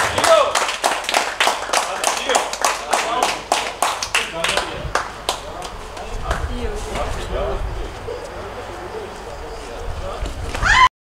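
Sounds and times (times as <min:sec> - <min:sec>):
people clapping in rhythm: 0:00.0 - 0:06.4
voices: 0:01.6 - 0:10.8.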